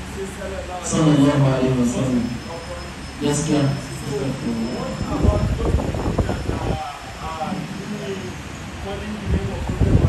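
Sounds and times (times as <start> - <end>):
man talking through microphone: 0.0 - 10.0
steady background hum: 0.0 - 10.0.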